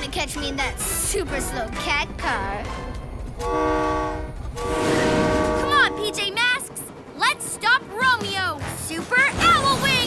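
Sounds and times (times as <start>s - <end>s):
cartoon train horn chord: 3.4s - 6.5s.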